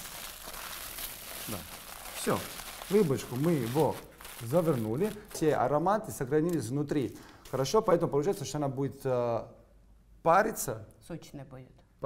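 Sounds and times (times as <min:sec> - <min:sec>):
aluminium foil crinkling: 0:00.0 - 0:05.7.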